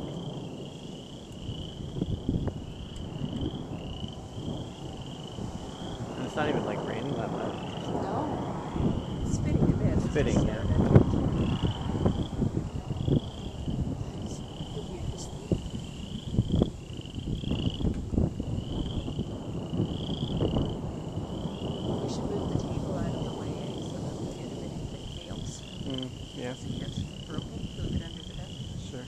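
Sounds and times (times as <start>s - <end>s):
frogs trilling: 0.0s - 29.0s
rolling thunder: 0.0s - 29.0s
wind on microphone: 0.0s - 29.0s.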